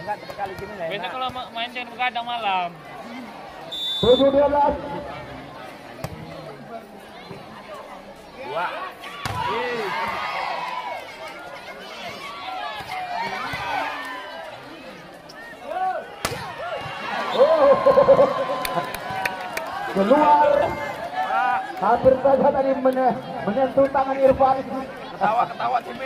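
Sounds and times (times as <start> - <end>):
spectators shouting and cheering: 6.2 - 26.0.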